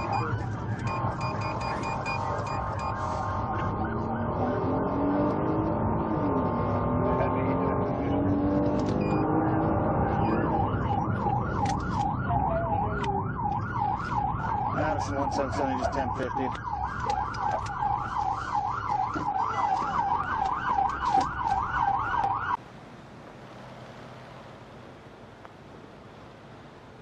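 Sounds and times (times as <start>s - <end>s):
emergency vehicle siren: 0.0s - 22.6s
road traffic noise: 0.0s - 27.0s.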